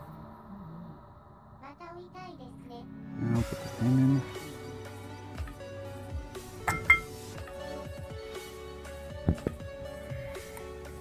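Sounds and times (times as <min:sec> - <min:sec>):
background music: 0:02.3 - 0:11.0.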